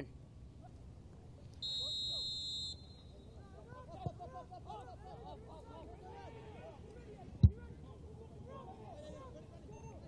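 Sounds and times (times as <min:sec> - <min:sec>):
faint field ambience: 0:00.0 - 0:10.0
referee's whistle blast: 0:01.6 - 0:03.3.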